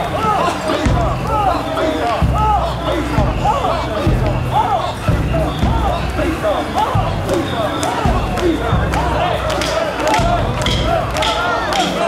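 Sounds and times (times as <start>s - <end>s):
low thuds: 0.0s - 11.6s
crowd chanting in unison: 0.0s - 12.0s.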